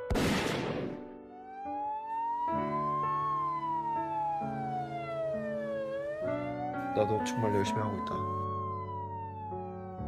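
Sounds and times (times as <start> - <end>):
background music chords: 0.0 - 10.0
slow wailing siren: 1.2 - 10.0.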